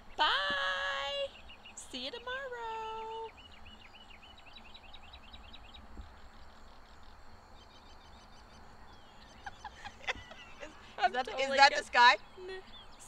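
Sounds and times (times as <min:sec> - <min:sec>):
songbird chirping: 0:00.0 - 0:13.0
woman calling goodbye: 0:00.2 - 0:03.3.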